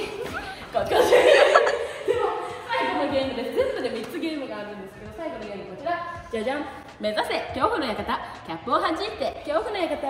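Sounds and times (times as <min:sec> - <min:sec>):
woman laughing: 0:00.0 - 0:02.8.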